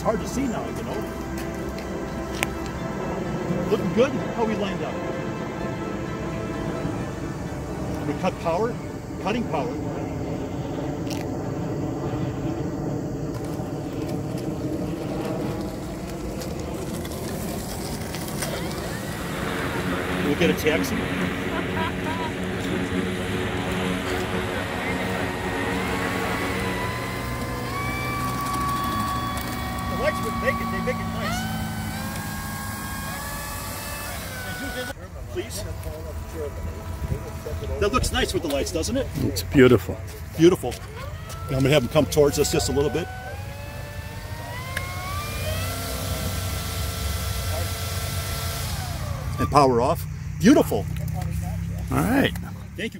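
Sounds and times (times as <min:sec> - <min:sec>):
low rumble: 0:00.0 - 0:33.7
electric motor and propeller whining: 0:00.0 - 0:52.9.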